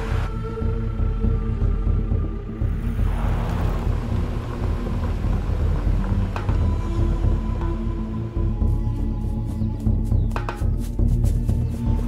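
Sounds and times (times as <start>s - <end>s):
low tense film score drone: 0.0s - 9.2s
vehicle engine and tyres rumbling: 2.4s - 10.0s.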